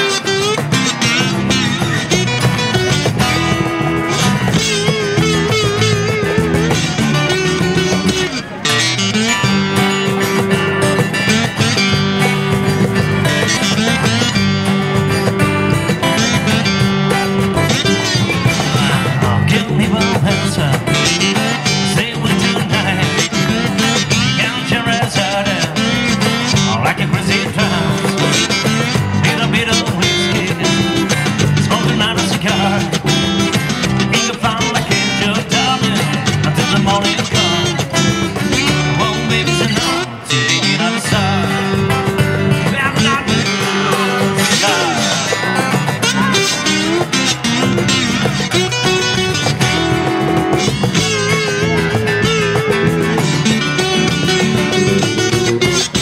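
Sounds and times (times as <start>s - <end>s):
acoustic band playing rock: 0.0s - 56.0s.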